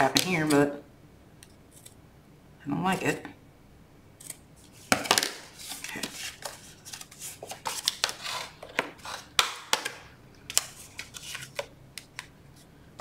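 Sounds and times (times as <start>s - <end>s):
paper rustling: 4.6s - 9.9s, 10.5s - 12.7s.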